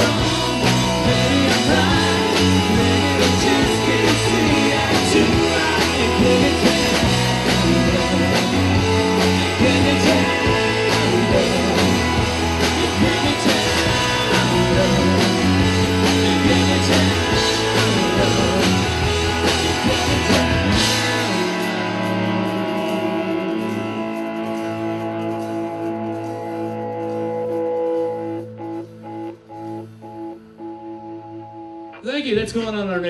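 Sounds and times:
live rock band playing: 0.0s - 33.0s.

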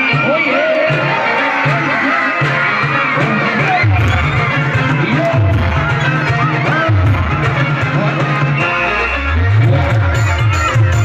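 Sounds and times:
heavy rhythmic bass line: 0.0s - 11.0s
loud dance music: 0.0s - 11.0s.

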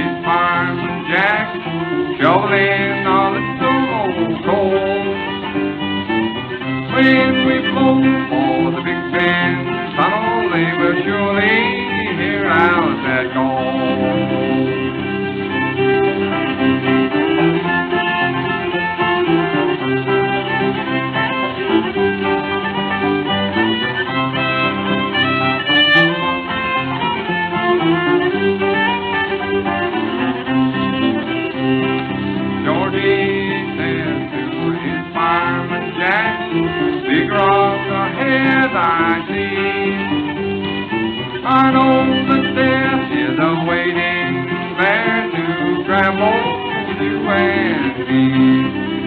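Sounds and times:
fiddle melody: 0.0s - 49.0s
rhythmic string accompaniment: 0.0s - 49.0s.

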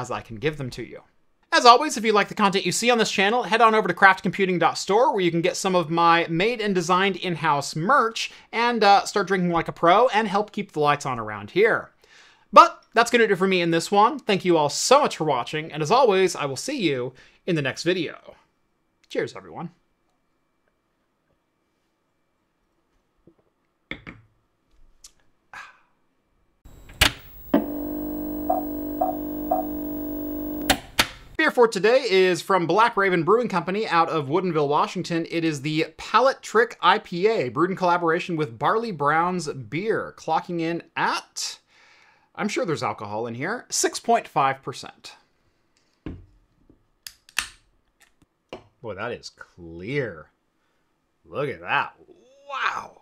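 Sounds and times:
short beeps: 26.7s - 30.8s
buzzing chord: 26.7s - 30.9s.

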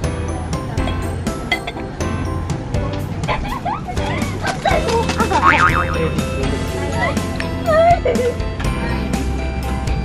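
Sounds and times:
wavering sliding notes: 5.4s - 6.5s.

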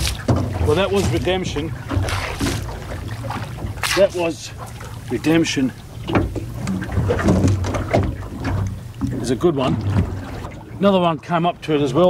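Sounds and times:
water sloshing along boat hull: 0.0s - 12.0s.

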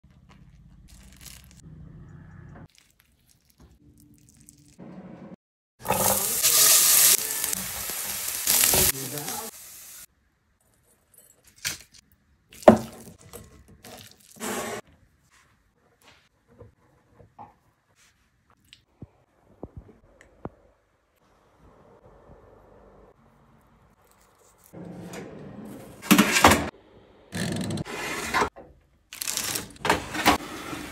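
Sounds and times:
potatoes sizzling in hot oil: 5.8s - 10.1s.

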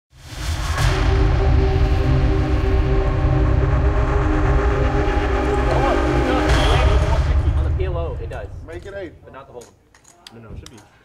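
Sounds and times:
loud low rumble: 0.2s - 8.9s
held drone chord: 0.8s - 8.8s.

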